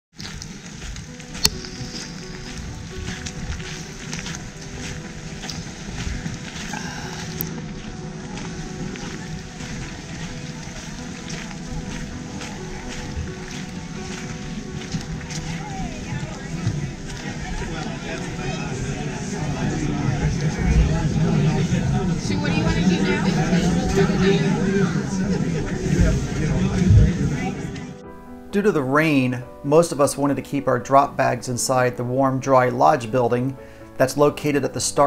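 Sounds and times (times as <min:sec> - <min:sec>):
steady rain: 0:00.2 - 0:28.0
indistinct voices: 0:04.1 - 0:28.0.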